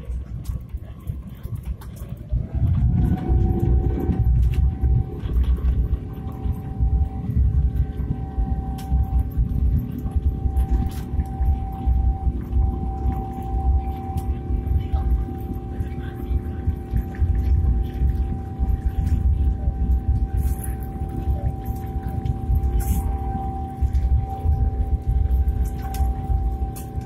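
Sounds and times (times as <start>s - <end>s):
jet engine whine: 0.0s - 27.0s.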